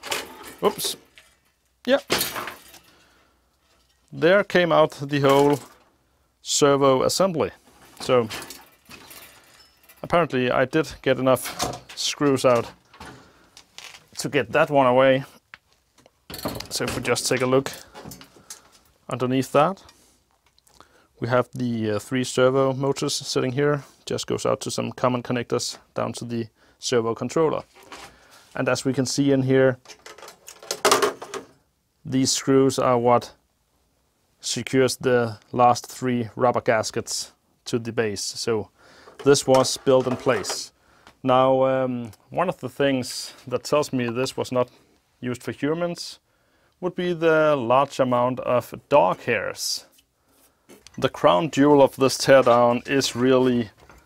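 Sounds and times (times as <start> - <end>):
metal clattering and scraping: 0.0 - 3.0, 7.8 - 10.2, 39.1 - 40.7.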